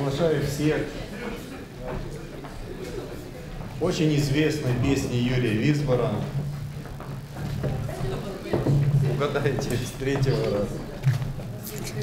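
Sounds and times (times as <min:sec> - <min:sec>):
faint voices: 0:00.0 - 0:12.0
low electrical hum: 0:03.0 - 0:12.0.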